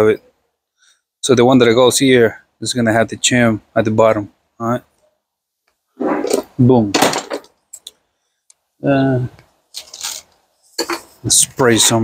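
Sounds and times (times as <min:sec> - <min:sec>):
short scrape: 0:06.0 - 0:06.6.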